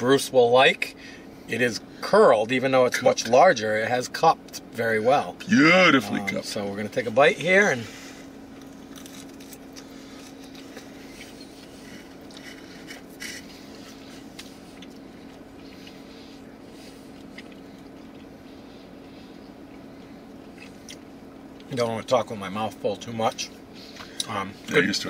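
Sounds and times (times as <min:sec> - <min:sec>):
low car cabin hum: 0:00.0 - 0:25.0
person chewing food: 0:08.2 - 0:21.7.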